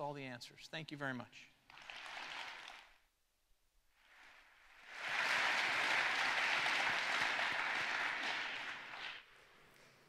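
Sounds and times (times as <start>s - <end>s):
audience applauding: 1.7s - 3.0s, 4.1s - 9.5s.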